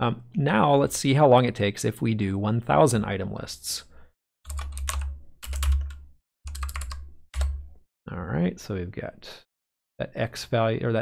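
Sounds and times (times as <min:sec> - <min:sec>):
keyboard typing: 0:04.5 - 0:07.8.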